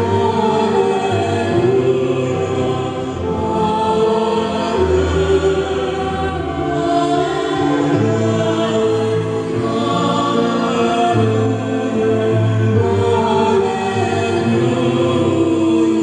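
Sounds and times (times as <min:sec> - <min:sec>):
choir singing over loudspeakers: 0:00.0 - 0:16.0.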